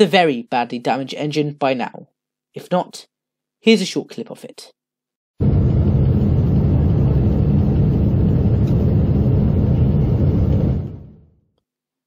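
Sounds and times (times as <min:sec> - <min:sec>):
jet engine rumble from cabin: 0:05.4 - 0:11.3.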